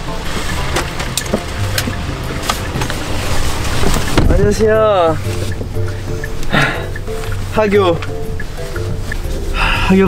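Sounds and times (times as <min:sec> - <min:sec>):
knocks and clicks in car: 0:00.0 - 0:09.4
steady low rumble: 0:00.0 - 0:10.0.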